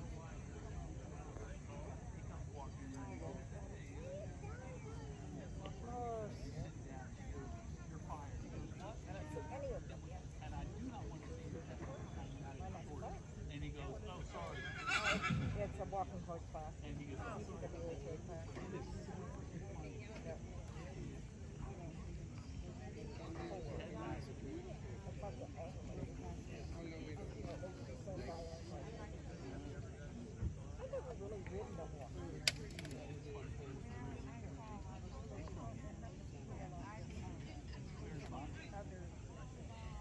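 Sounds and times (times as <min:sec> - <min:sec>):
indistinct talk of people: 0:00.0 - 0:40.0
horse whinnying: 0:14.6 - 0:15.6.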